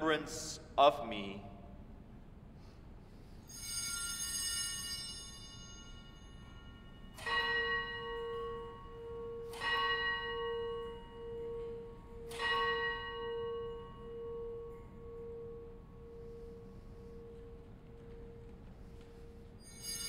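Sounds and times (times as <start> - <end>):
bell ringing: 3.4 - 20.0.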